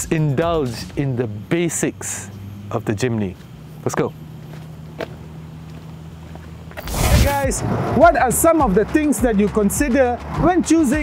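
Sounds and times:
steady low hum: 0:00.0 - 0:08.8
whooshing sound effect: 0:06.8 - 0:08.0.

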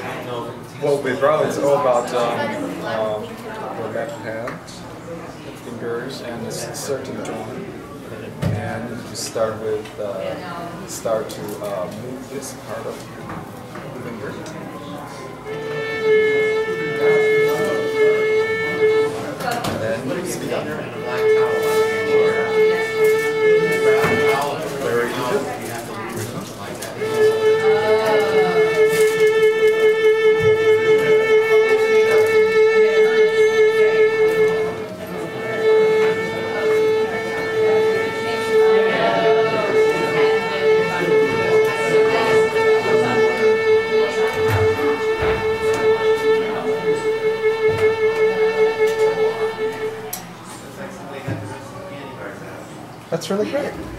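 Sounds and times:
violin held note with vibrato: 0:15.5 - 0:20.1, 0:20.8 - 0:50.5.

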